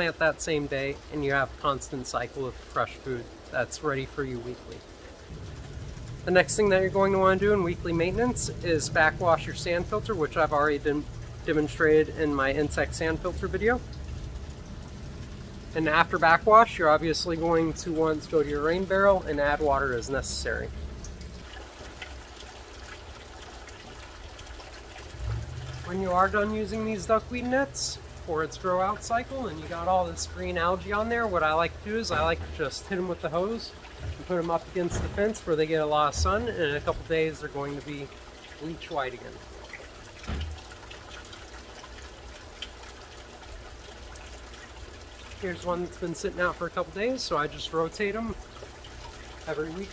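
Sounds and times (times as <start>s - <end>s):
low steady hum: 0.0s - 49.9s
water trickling into tank: 0.0s - 49.9s.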